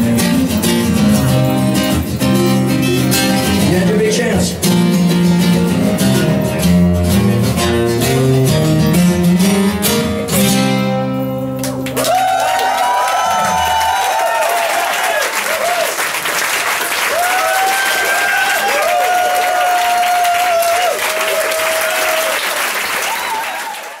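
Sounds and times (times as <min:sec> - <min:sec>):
audience applauding and cheering: 0:11.6 - 0:24.0
whistles and whoops: 0:12.0 - 0:16.0, 0:17.1 - 0:24.0.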